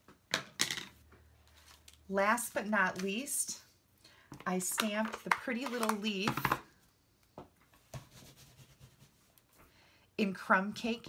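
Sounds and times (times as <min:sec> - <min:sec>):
rustle of craft supplies: 0:01.1 - 0:03.7.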